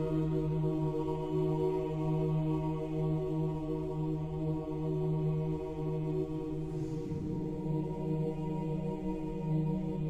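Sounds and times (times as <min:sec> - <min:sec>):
voices chanting a low chord: 0:00.0 - 0:10.0.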